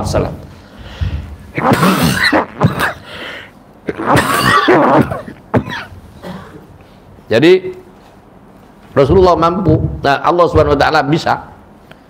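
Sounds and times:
man clearing his throat: 0:01.6 - 0:03.1, 0:03.8 - 0:06.7
man coughing: 0:01.6 - 0:03.2, 0:03.8 - 0:06.7.

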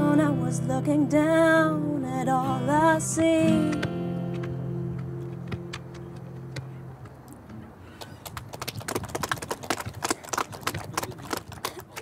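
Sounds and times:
acoustic guitar chord ringing: 0:00.0 - 0:05.7
people clapping: 0:08.0 - 0:12.0.

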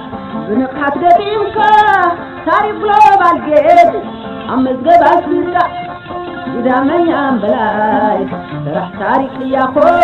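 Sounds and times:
instrumental music: 0:00.0 - 0:10.0.

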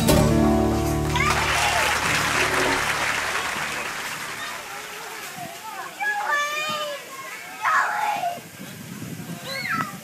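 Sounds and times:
young child calling and babbling: 0:09.3 - 0:10.0.

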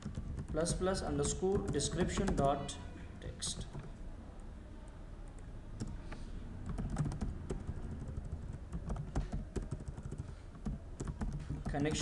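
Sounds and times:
typing on computer keyboard: 0:00.0 - 0:02.5, 0:06.6 - 0:12.0.

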